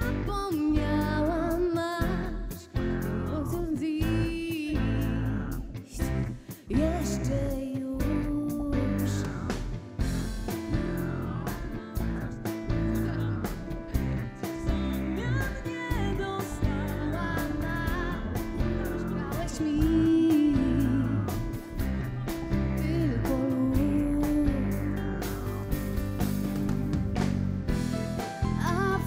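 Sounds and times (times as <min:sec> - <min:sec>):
woman singing into microphone: 0:00.0 - 0:09.8, 0:10.7 - 0:25.3, 0:28.5 - 0:29.0
live pop-rock band: 0:00.0 - 0:29.0.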